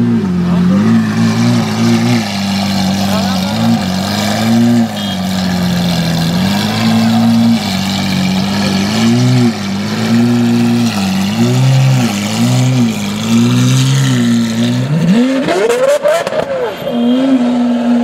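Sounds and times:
sports car engine revving: 0.0s - 18.0s.

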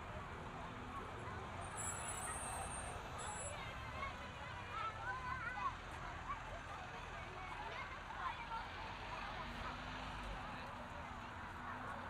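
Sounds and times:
passers-by talking: 0.0s - 12.0s
road traffic rumble: 0.0s - 12.0s
faint high squeaks: 1.7s - 3.5s.

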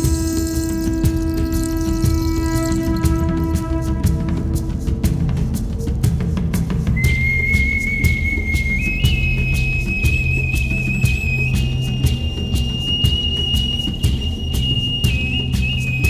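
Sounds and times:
whistle-like melody: 0.0s - 4.6s, 7.0s - 16.0s
steady beat: 0.0s - 16.0s.

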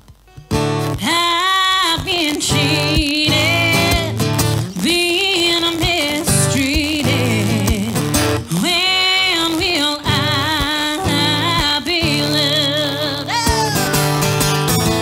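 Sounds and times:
strummed acoustic guitar: 0.2s - 15.0s
woman singing: 1.0s - 14.1s.

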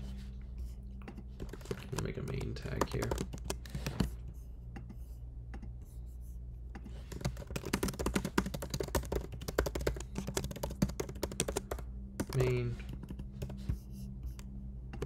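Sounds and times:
low steady hum: 0.0s - 15.0s
computer keyboard typing: 1.0s - 4.2s, 6.8s - 15.0s.

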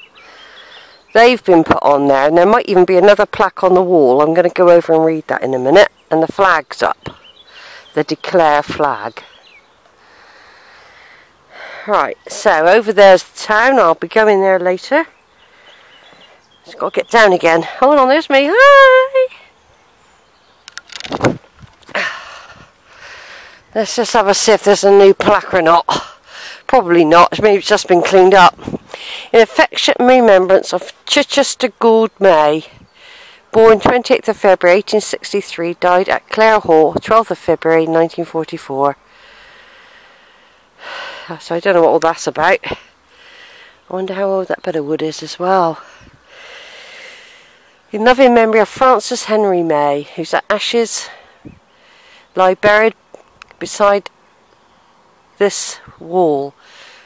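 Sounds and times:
woman speaking: 1.2s - 7.2s, 7.9s - 9.3s, 11.8s - 15.1s, 16.7s - 19.5s, 23.7s - 28.6s, 29.2s - 32.8s, 33.5s - 39.0s, 41.3s - 42.8s, 43.9s - 45.9s, 47.9s - 51.2s, 52.3s - 53.0s, 53.6s - 54.1s, 55.4s - 56.6s
woman's soft intake of breath: 10.0s - 11.9s, 22.0s - 23.7s, 39.1s - 41.3s, 43.1s - 43.8s, 45.8s - 47.8s
camera handling noise: 20.6s - 21.9s
footstep thud on grass: 21.1s - 21.7s.

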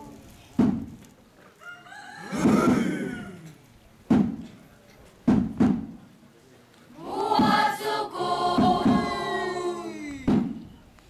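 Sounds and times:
rooster crowing: 1.6s - 3.5s.

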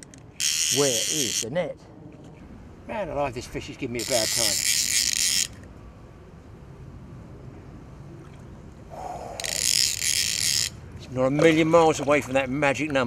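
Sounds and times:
fishing reel ratchet buzzing: 0.0s - 1.4s, 4.0s - 5.6s, 9.4s - 10.8s.

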